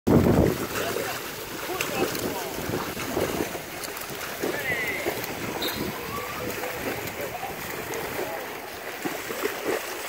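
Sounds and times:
wind on microphone: 0:00.1 - 0:08.4
swimmer splashing and kicking: 0:00.1 - 0:10.0.

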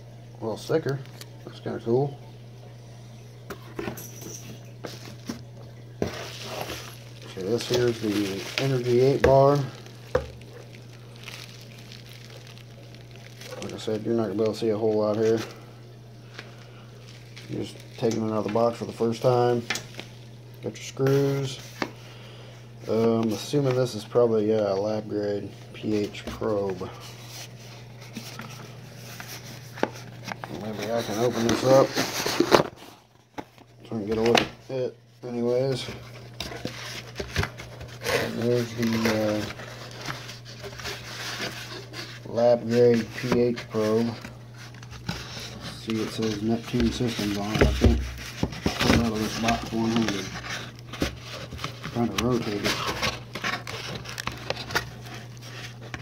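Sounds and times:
low steady hum: 0:00.0 - 0:56.0
bubble wrap rustling: 0:04.4 - 0:22.0, 0:22.8 - 0:34.4, 0:35.2 - 0:56.0.

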